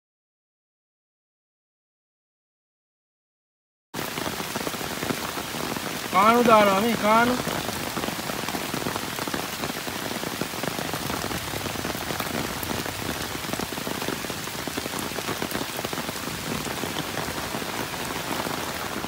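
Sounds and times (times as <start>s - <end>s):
heavy rain on floodwater: 4.0s - 19.0s.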